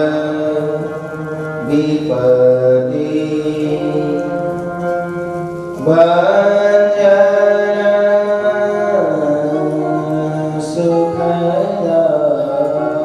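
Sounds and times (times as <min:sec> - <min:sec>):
devotional chanting with music: 0:00.0 - 0:13.0.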